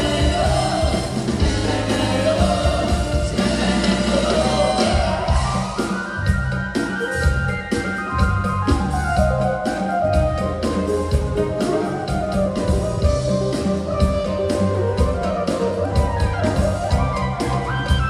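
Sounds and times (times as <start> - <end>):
bass: 0.0 - 18.0
drum kit beat: 0.0 - 18.0
electronic keyboard melody: 0.0 - 18.0.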